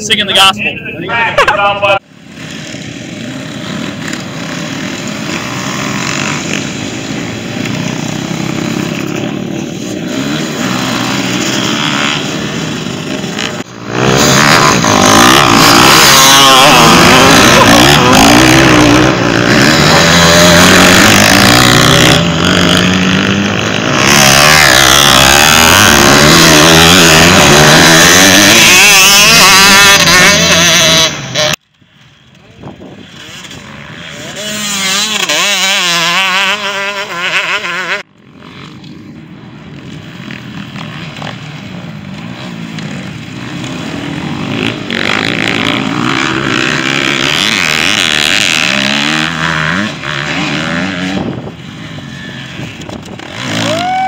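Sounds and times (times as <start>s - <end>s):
dirt bike engines revving: 0.0s - 54.0s.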